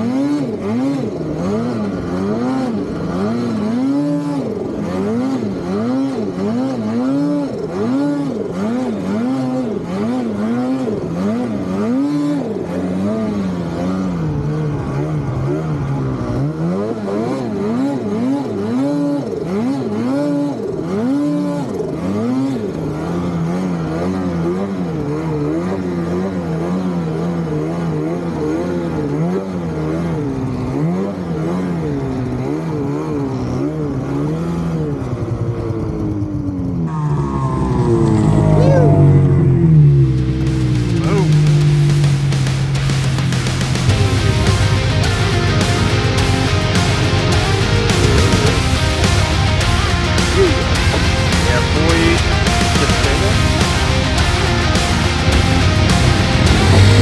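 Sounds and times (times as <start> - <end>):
snowmobile engine revving: 0.0 - 57.0.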